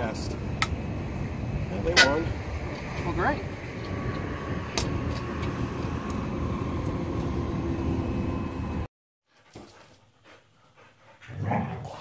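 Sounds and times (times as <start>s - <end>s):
motor vehicle rumbling: 0.0s - 8.9s.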